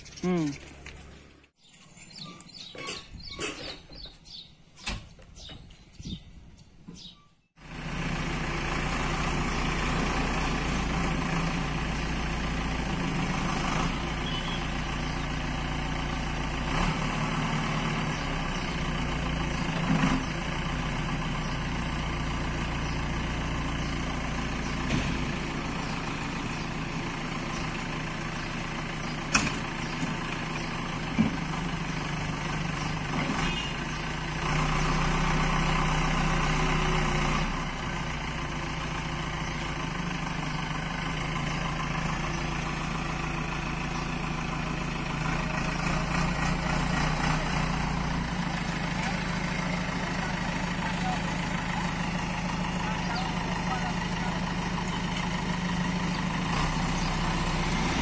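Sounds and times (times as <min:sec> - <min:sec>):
diesel engine running: 0:00.0 - 0:58.0
backhoe digging: 0:15.7 - 0:58.0.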